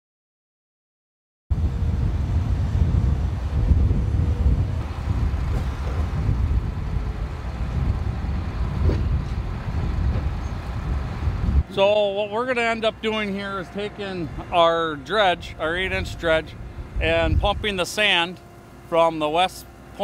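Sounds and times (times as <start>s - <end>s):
boat engines rumbling: 1.6s - 20.0s.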